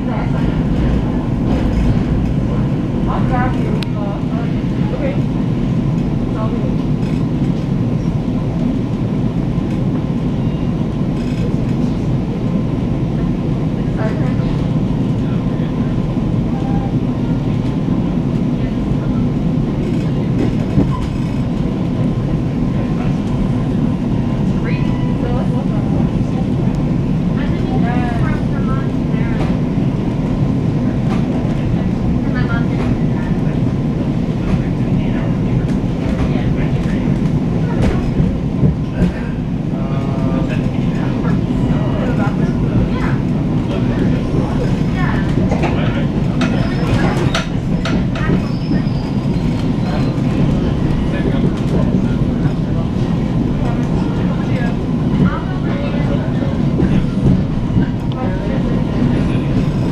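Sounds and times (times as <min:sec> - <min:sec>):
train car rumbling: 0:00.0 - 0:59.9.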